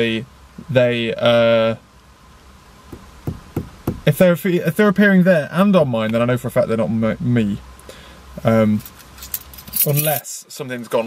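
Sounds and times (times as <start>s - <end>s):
light knocks: 2.9s - 4.1s.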